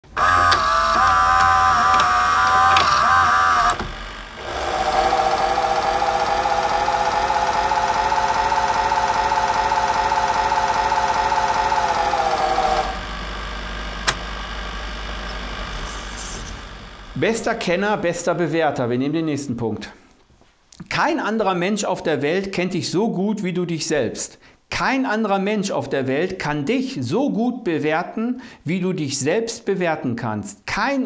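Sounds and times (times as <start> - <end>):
electronic buzzing drone: 0.0 - 17.3
click: 14.0 - 14.2.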